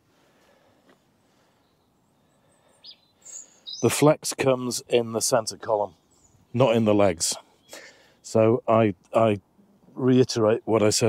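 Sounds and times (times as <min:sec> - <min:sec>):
high bird chirps: 0:01.6 - 0:04.1
man's voice: 0:03.8 - 0:05.9, 0:06.6 - 0:07.4, 0:10.0 - 0:11.0.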